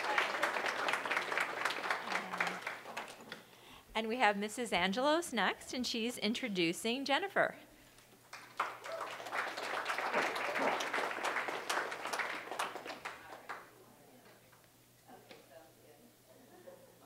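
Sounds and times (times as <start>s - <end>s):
audience clapping: 0.0s - 3.5s, 8.2s - 13.7s.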